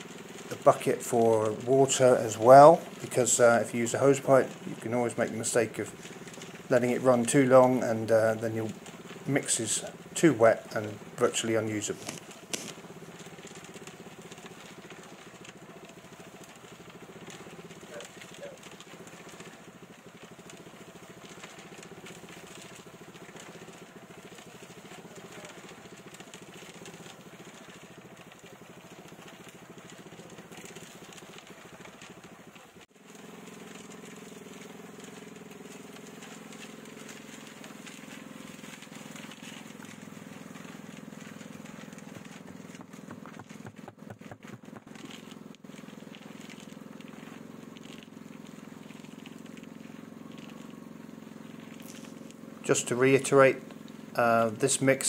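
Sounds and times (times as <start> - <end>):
concrete tumbling in drum: 0.0 - 54.2
concrete mixer running: 0.0 - 55.0.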